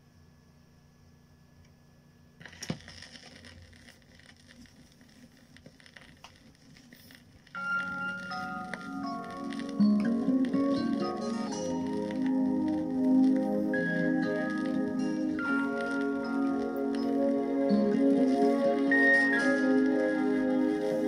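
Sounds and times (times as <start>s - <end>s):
vinyl surface hiss and crackle: 1.6s - 21.0s
music playing from record: 7.5s - 21.0s.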